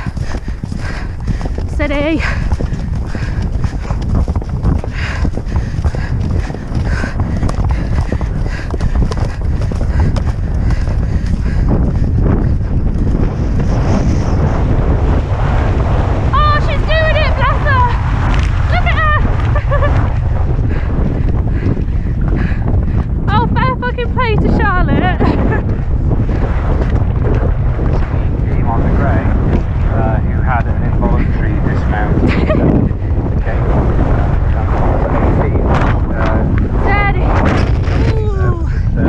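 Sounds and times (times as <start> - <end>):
galloping hoofbeats: 0.0 - 14.4
wind buffeting microphone: 0.0 - 39.0.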